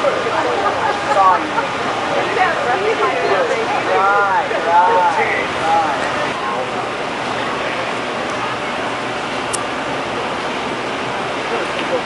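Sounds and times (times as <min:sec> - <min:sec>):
indistinct talking: 0:00.0 - 0:12.0
steady rushing noise: 0:00.0 - 0:12.0.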